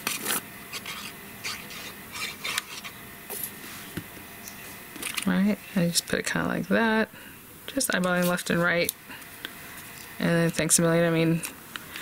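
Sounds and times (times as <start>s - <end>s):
plastic nozzle scraping paper: 0.0s - 2.9s.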